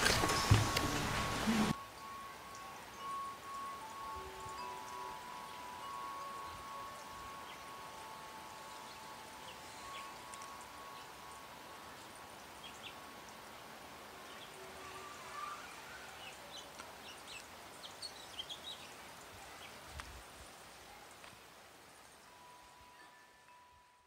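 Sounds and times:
faint ticks and rustles: 0.0s - 23.6s
bell chime ringing: 1.7s - 12.2s.

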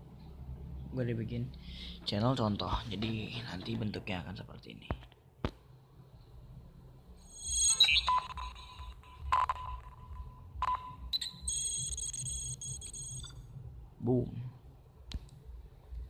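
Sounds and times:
steady electronic tone: 7.2s - 13.6s.

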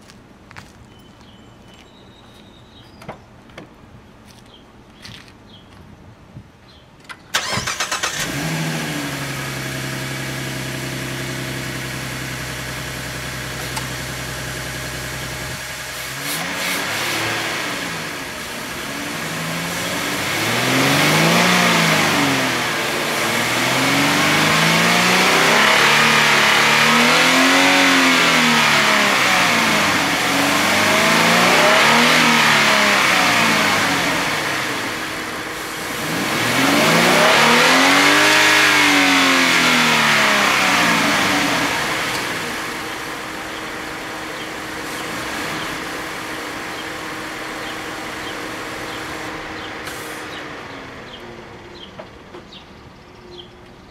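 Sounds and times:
car engine starting: 7.0s - 53.5s
car engine revving: 7.3s - 51.9s
car engine idling: 7.3s - 53.9s.

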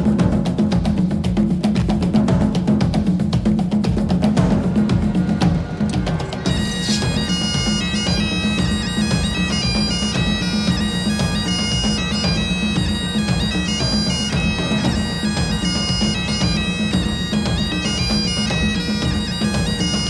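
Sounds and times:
drums: 0.0s - 20.0s
bagpipes playing melody: 6.4s - 20.0s.

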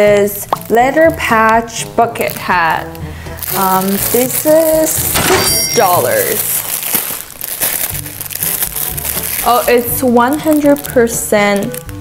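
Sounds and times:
background music: 0.0s - 12.0s
plastic bag crinkling: 0.2s - 12.0s.

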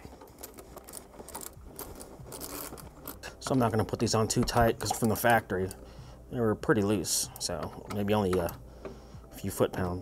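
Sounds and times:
small metal and plastic parts rattling: 0.0s - 5.8s.

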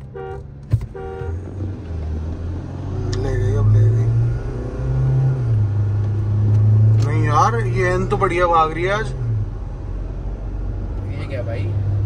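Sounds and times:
car engine drone in cabin: 0.0s - 12.0s
road noise: 0.0s - 12.0s.

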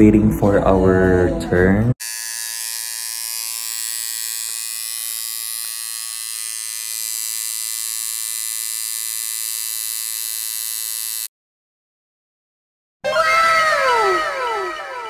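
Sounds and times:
electric tattoo machine buzzing: 2.0s - 11.3s.

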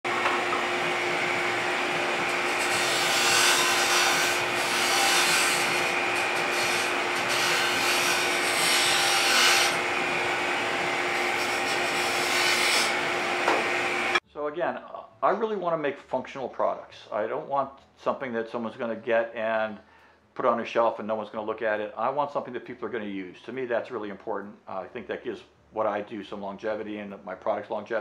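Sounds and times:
lathe motor hum: 0.1s - 14.2s
lathe tool cutting wood: 0.1s - 14.2s.

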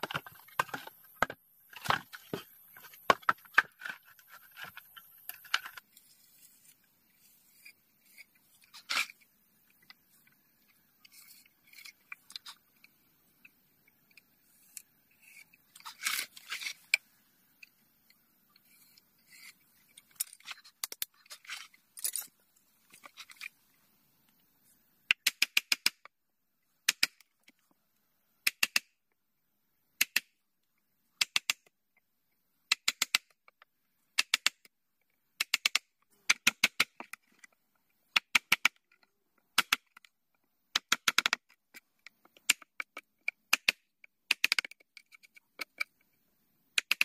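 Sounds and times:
scraping and rustling of wood: 0.0s - 9.2s.

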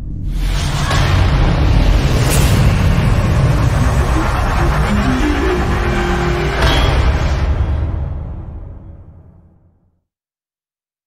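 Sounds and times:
deep loud rumble: 0.0s - 8.7s
sweeping whoosh: 0.3s - 8.1s
rising tones: 2.6s - 7.8s.

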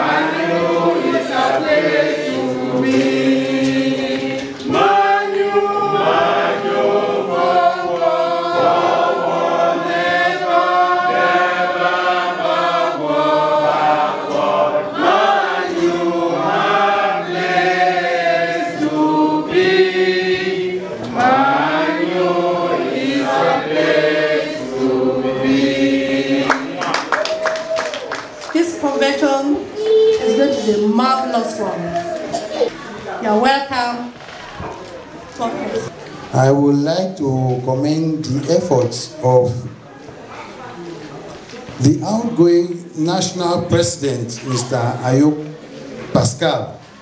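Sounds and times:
group singing in chorus: 0.0s - 33.2s.

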